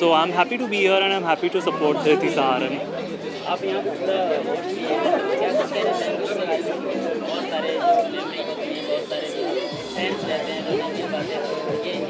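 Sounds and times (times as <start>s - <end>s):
crowd talking at once: 0.0s - 12.0s
faint background music: 0.0s - 12.0s.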